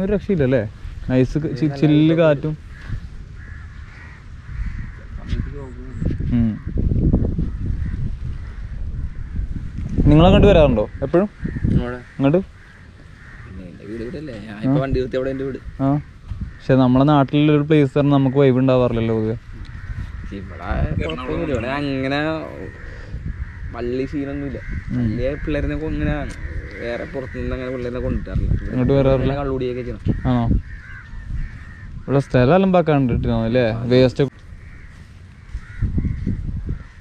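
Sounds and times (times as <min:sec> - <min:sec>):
man talking: 0:00.0 - 0:02.6, 0:13.5 - 0:16.1, 0:20.2 - 0:23.0, 0:23.7 - 0:30.6, 0:32.1 - 0:34.3
wind buffeting microphone: 0:00.0 - 0:37.0
short calls: 0:19.6 - 0:23.7.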